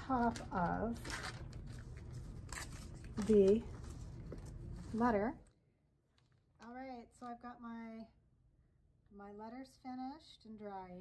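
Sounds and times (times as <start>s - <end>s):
wet paper crinkling: 0.0s - 5.0s.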